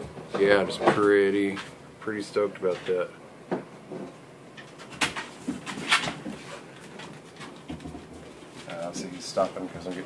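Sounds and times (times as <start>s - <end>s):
low room noise: 0.0s - 10.0s
man speaking softly: 8.7s - 10.0s.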